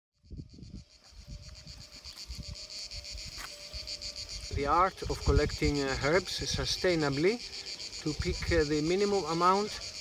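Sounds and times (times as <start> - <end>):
insects chirping: 0.2 - 10.0.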